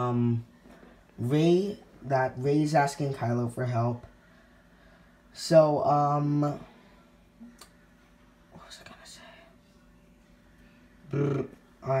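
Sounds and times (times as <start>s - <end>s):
low room hiss: 0.0s - 12.0s
person whispering: 8.5s - 9.6s.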